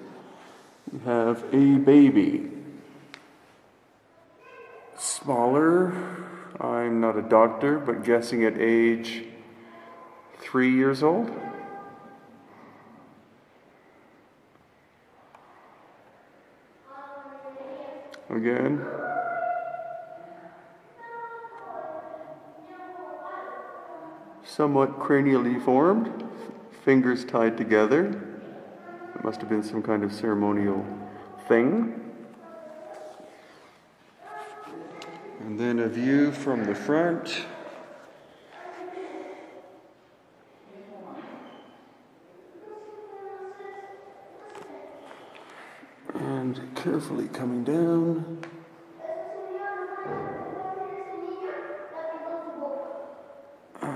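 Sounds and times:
child making high-pitched vocal sounds: 18.8s - 20.4s.

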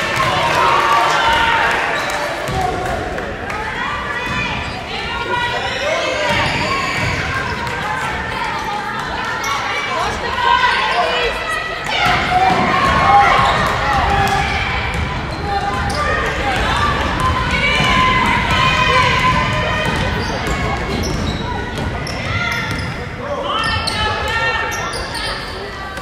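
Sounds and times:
echoing voices and shouts: 0.0s - 26.0s.

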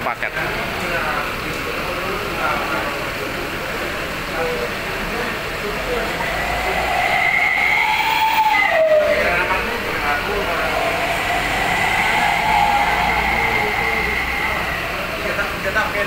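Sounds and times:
large vehicle engine whining: 0.6s - 16.0s
background voices: 4.9s - 16.0s.

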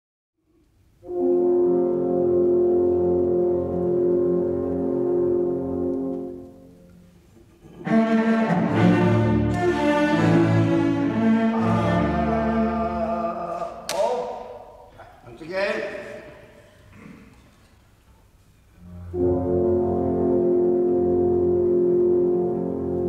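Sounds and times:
orchestra with strings: 1.0s - 14.6s, 18.8s - 23.0s.

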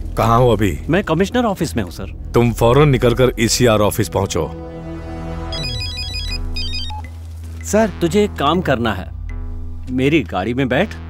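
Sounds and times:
phone ringtone beeps: 5.5s - 7.1s.

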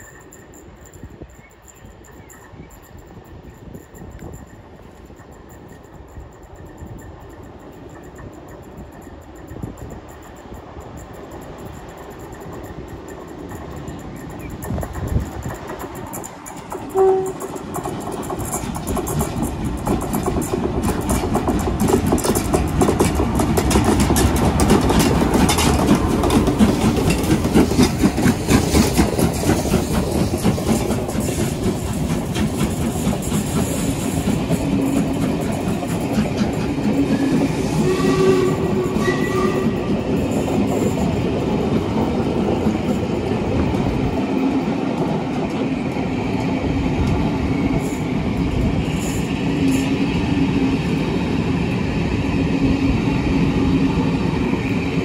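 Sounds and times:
train rumble: 0.0s - 55.0s
wheels clattering over rail joints: 11.8s - 47.3s
train warning horn blast: 16.9s - 17.5s, 37.2s - 39.9s.

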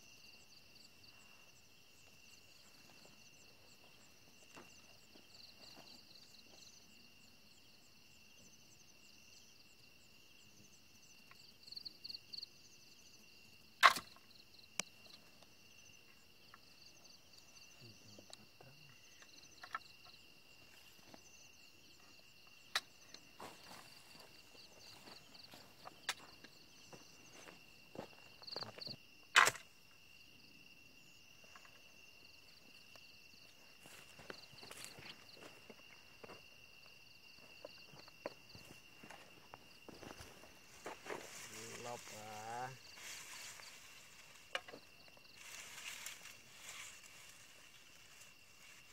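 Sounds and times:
crickets and night insects: 0.0s - 48.9s
rustling through grass: 38.9s - 48.9s.

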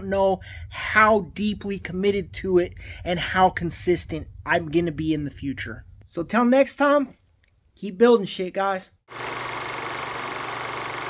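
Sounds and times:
film projector whirring: 9.1s - 11.0s.

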